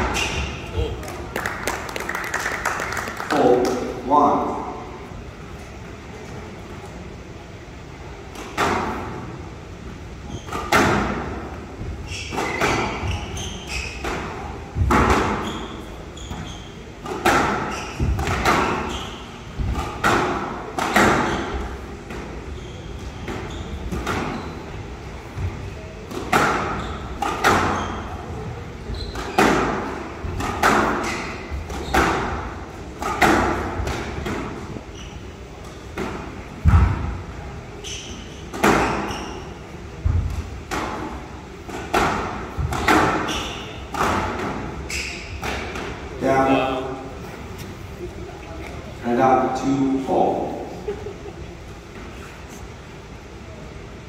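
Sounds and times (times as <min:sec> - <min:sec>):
rackets hitting squash ball: 0:00.0 - 0:04.0, 0:08.2 - 0:09.4, 0:10.1 - 0:47.8.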